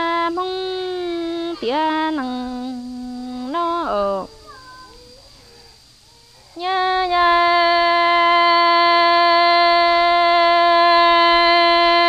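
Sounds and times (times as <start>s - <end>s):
woman singing: 0.0s - 4.5s, 6.5s - 12.0s.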